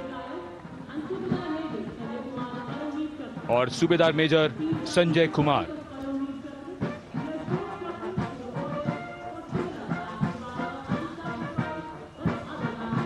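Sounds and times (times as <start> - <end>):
brass band music: 6.8 - 13.0.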